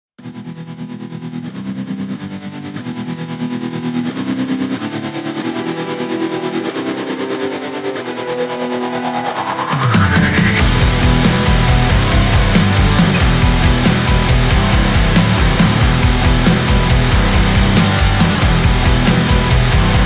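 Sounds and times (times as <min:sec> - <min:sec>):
distorted electric guitar: 0:00.2 - 0:20.0
rising pitch glide: 0:07.5 - 0:20.0
rock band with drums: 0:09.6 - 0:20.0.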